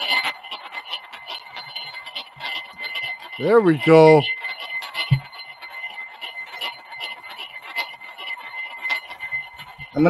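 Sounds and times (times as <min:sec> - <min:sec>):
faint irregular ticks: 0:00.0 - 0:10.0
high coil whine: 0:00.0 - 0:10.0.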